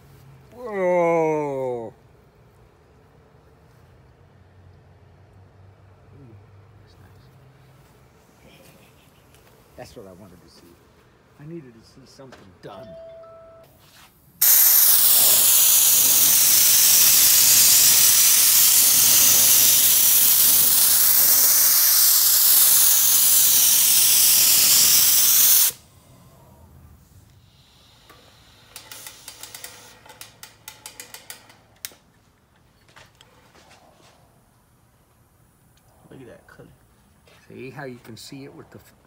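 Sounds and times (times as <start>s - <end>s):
paint spray gun hissing: 14.4s - 25.8s, 27.4s - 31.3s.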